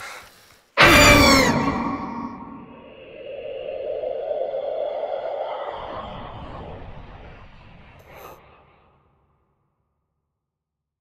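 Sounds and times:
low rumble: 0.8s - 8.8s
noisy whoosh: 1.3s - 8.8s.

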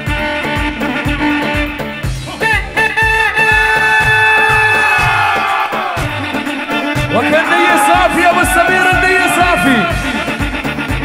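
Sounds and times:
keyboard melody: 0.0s - 11.0s
steady low drum beat: 0.0s - 11.0s.

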